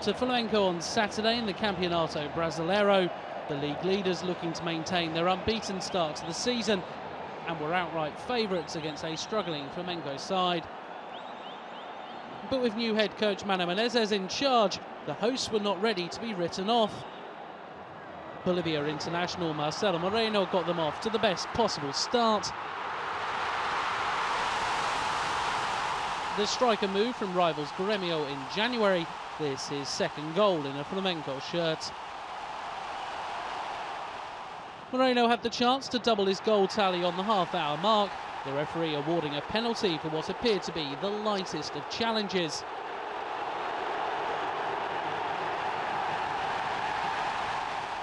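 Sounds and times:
stadium crowd roaring: 0:00.0 - 0:48.0.

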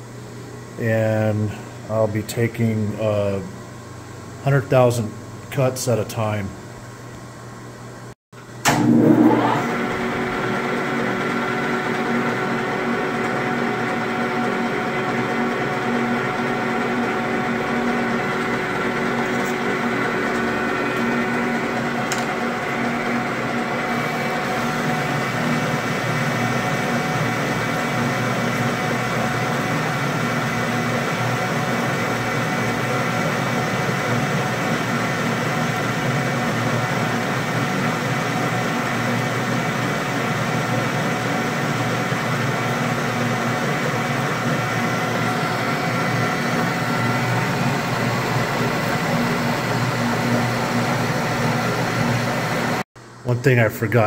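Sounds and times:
metal lathe whining: 0:08.8 - 0:52.8.

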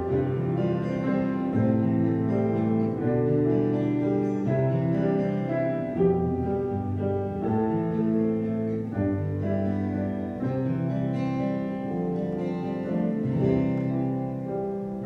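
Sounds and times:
solo acoustic guitar: 0:00.0 - 0:15.0.

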